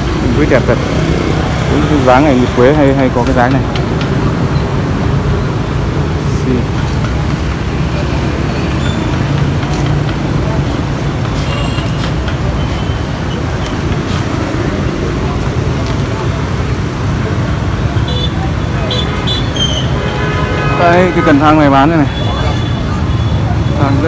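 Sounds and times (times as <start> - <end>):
people talking: 0.0 - 3.8, 20.5 - 24.0
low rumble of street traffic: 0.0 - 24.0.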